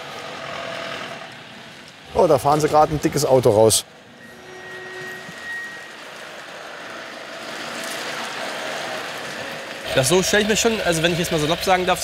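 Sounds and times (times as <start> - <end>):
truck driving past: 4.2 - 12.0.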